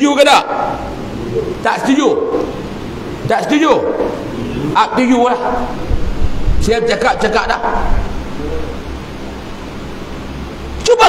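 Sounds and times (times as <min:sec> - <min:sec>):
background hiss: 0:00.0 - 0:11.0
low electrical hum: 0:00.0 - 0:11.0.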